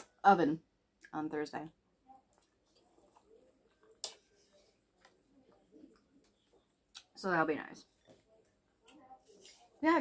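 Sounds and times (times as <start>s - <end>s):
faint chewing: 2.1s - 7.2s.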